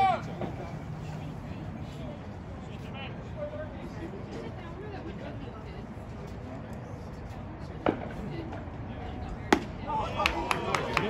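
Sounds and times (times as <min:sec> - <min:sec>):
baseball impact crack: 0:09.5 - 0:10.4.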